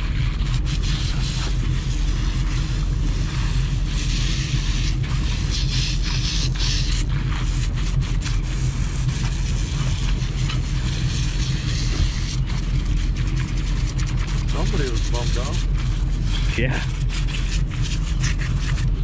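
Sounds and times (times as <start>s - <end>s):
boat engine rumbling: 0.0s - 19.0s.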